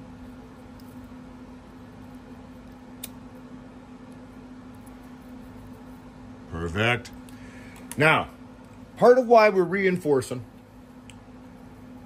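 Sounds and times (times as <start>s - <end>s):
steady low hum: 0.0s - 12.0s
small click: 3.0s - 3.2s.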